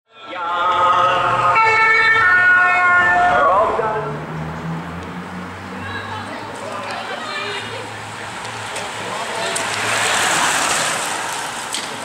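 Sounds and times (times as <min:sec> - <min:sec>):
wailing siren: 0:00.4 - 0:04.2.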